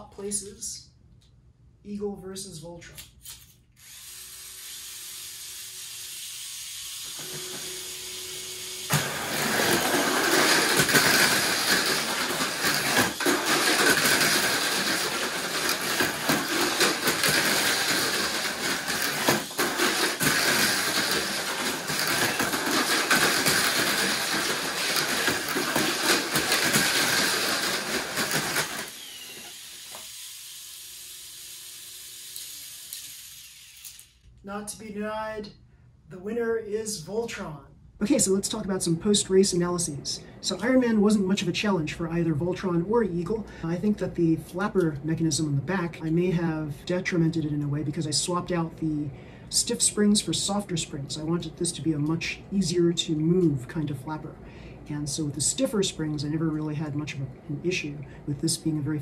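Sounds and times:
small electric motors whirring: 3.3s - 34.3s.

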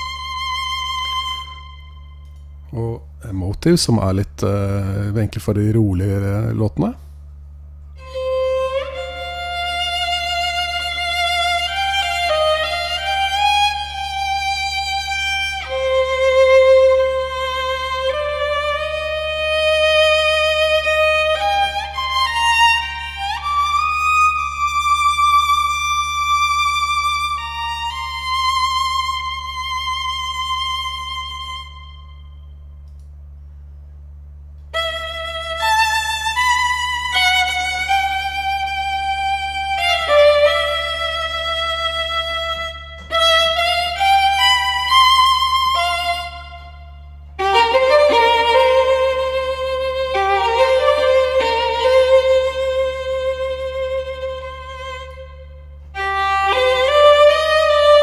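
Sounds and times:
solo violin with vibrato: 0.0s - 2.4s, 8.0s - 32.5s, 34.7s - 58.0s
steady low hum: 0.0s - 58.0s.

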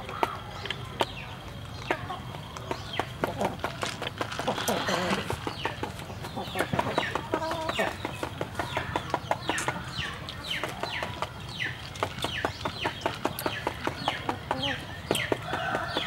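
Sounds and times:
chickens clucking and chirping: 0.0s - 16.0s.

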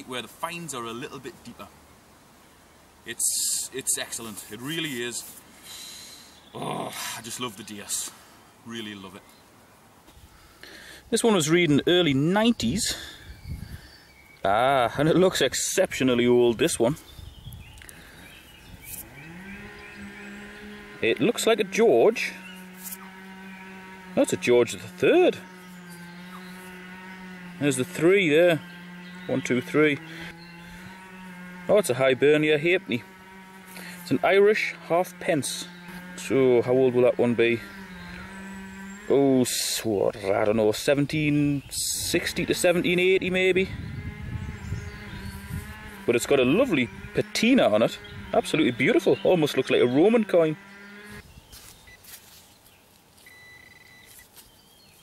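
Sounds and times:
cow mooing: 19.0s - 40.3s, 42.0s - 51.2s.

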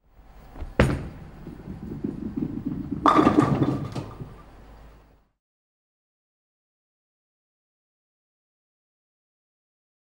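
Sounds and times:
bowling ball rolling: 0.4s - 5.0s
bowling pins clattering: 0.6s - 4.6s.

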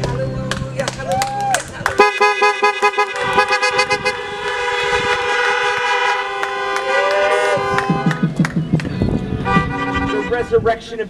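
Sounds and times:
car horns honking: 2.0s - 10.7s.

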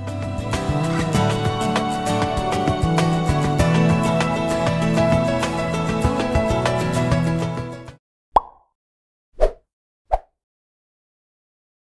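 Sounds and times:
background music: 0.0s - 8.0s
pop-like sound effects: 8.4s - 8.8s.

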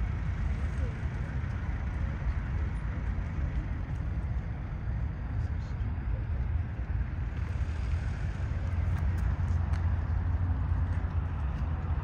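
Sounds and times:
distant jet engines rumbling: 0.0s - 12.0s.

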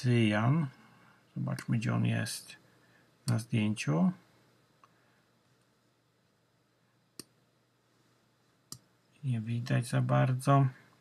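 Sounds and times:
computer mouse clicks: 8.7s - 8.9s.

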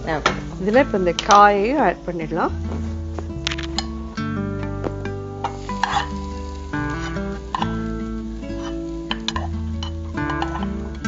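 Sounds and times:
background music sustained notes: 0.0s - 11.0s
food sizzling in hot pan: 0.0s - 11.0s
spoon clicking on pan: 9.1s - 10.7s.

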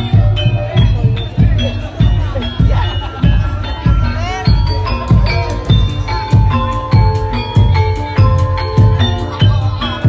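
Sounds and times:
quick steady drum beat: 0.0s - 10.0s
ringing metallophone and gong notes: 0.0s - 10.0s.

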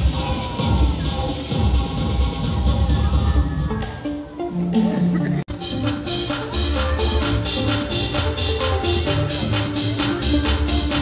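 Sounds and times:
song with heavy bass beat: 0.0s - 11.0s.

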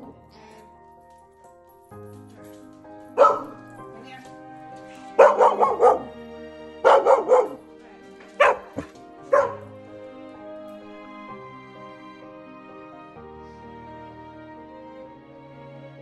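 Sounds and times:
soft background music: 0.0s - 16.0s
puppy barking: 3.2s - 3.8s, 5.0s - 6.2s, 6.8s - 7.6s, 8.4s - 9.7s.

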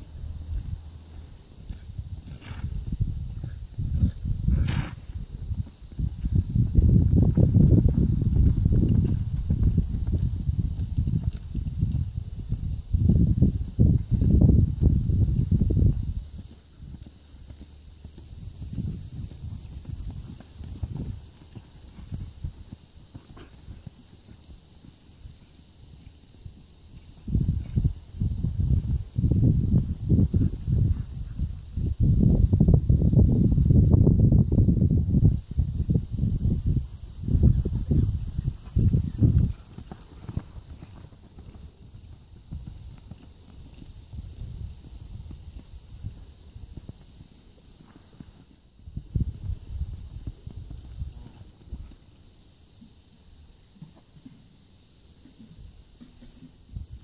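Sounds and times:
horse hoofbeats on sand: 0.0s - 31.8s, 36.1s - 53.2s, 55.2s - 57.0s.

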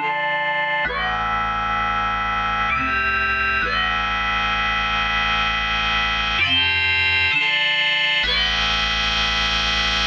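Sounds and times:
held synthesizer chord: 0.0s - 10.0s.

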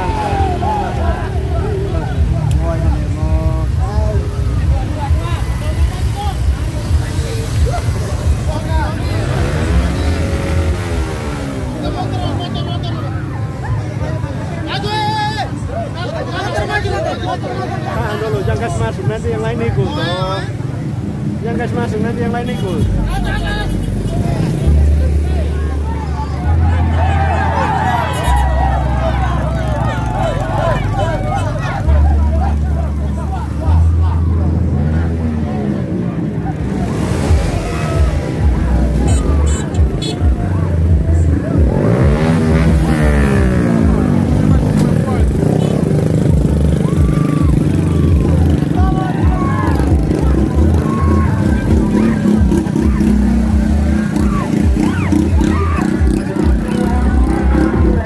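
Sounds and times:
crowd shouting and cheering: 0.0s - 20.7s, 22.6s - 58.0s
vehicle engines running: 0.0s - 58.0s.

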